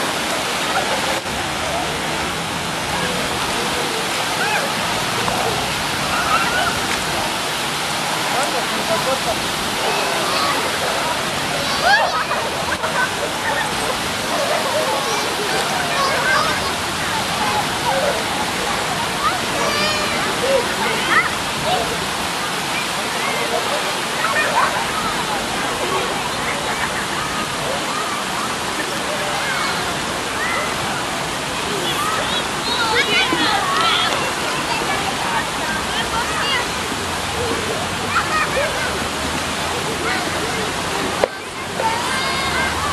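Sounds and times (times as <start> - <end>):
running water in fountain: 0.0 - 42.9
children splashing: 3.1 - 22.1
distant children shouting: 6.1 - 6.8.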